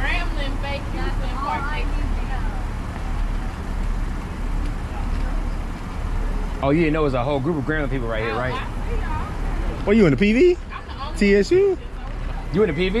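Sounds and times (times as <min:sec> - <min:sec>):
faint voices talking: 0:00.0 - 0:13.0
road traffic rumble: 0:00.0 - 0:13.0.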